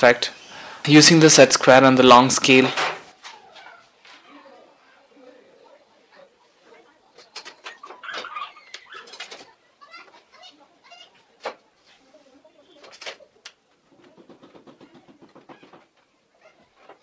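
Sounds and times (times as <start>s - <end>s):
bird calling: 7.6s - 9.5s.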